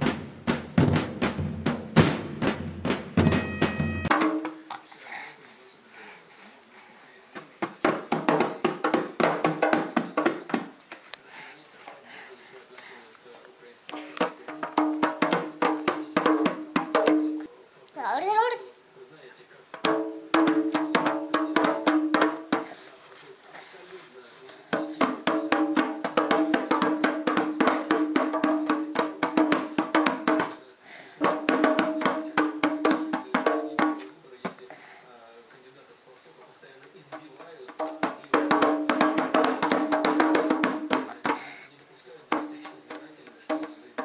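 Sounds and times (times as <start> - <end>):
hand drum strokes: 2.4 - 4.8.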